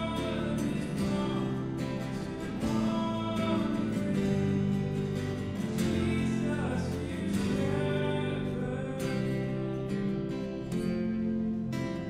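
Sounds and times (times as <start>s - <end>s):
voices singing: 0.0s - 10.8s
electric guitars: 0.0s - 12.0s
keyboard: 0.0s - 12.0s
strummed acoustic guitar: 0.0s - 12.0s.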